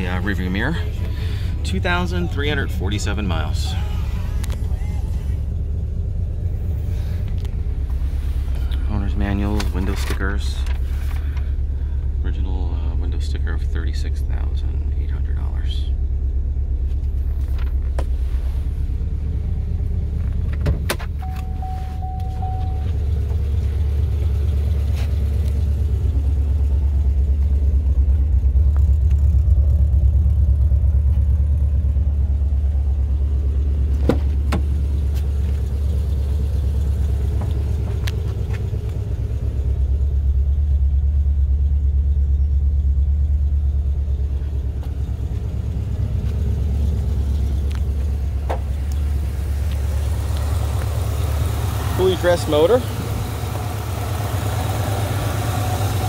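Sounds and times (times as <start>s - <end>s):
car engine idling: 0.0s - 56.0s
short steady beep: 21.2s - 22.9s.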